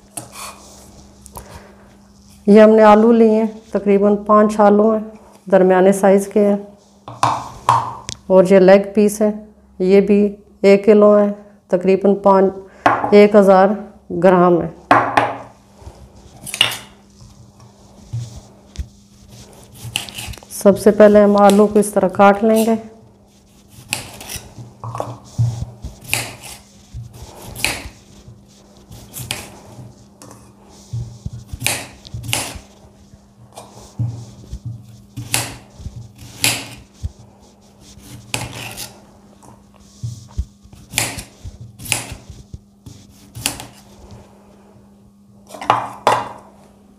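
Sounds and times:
knife scraping through potato: 0.0s - 4.3s, 15.7s - 44.6s.

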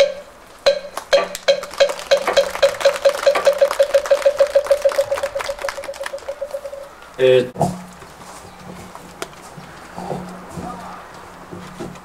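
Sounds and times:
hollow wooden knocks: 0.0s - 6.9s.

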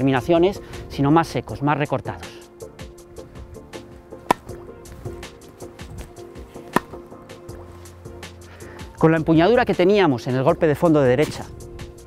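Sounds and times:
background music: 0.0s - 12.0s
tennis ball struck by racket: 3.8s - 7.5s.

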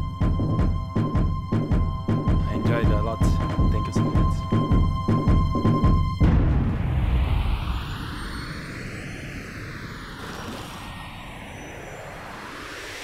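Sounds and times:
rushing noise with flanging sweep: 6.4s - 13.0s.

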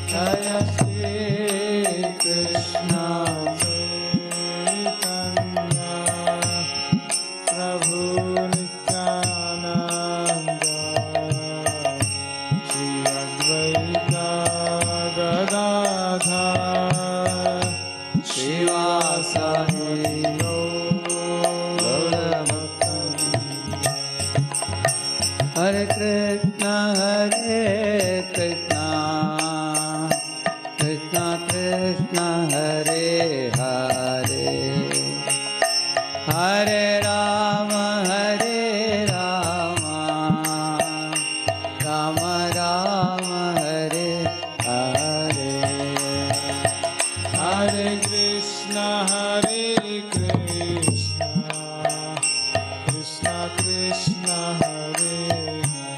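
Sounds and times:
man singing a chant: 0.0s - 24.5s, 25.2s - 55.9s
small hand cymbals striking: 0.0s - 55.9s.

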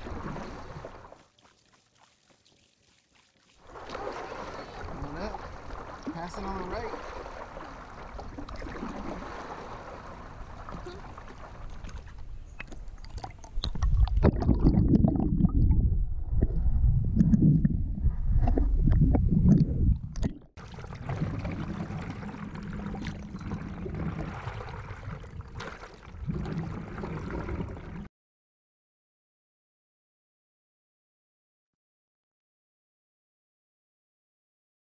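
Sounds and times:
water lapping and splashing: 0.0s - 28.1s.

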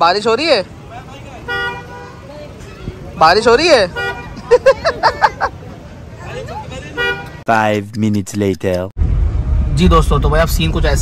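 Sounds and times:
street traffic hum: 0.0s - 11.0s
vehicle horn honk: 1.4s - 2.2s, 3.8s - 4.4s, 6.9s - 7.4s.

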